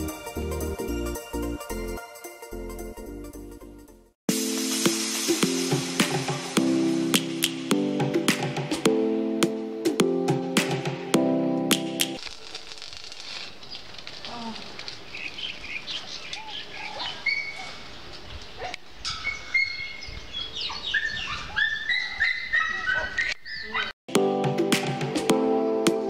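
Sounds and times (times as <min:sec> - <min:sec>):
birds chirping: 0:13.6 - 0:24.0.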